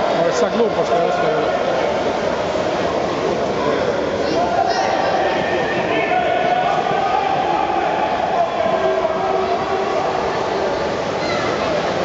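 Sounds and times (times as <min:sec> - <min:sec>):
water splashing: 0:00.0 - 0:12.0
voices shouting: 0:04.4 - 0:10.6.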